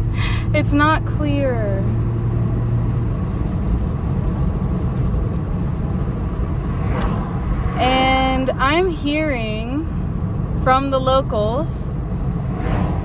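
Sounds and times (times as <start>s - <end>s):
road rumble and wind in car: 0.0s - 13.0s.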